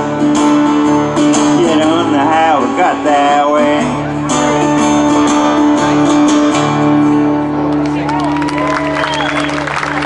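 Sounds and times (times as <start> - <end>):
acoustic guitar strumming chords: 0.0 - 7.8.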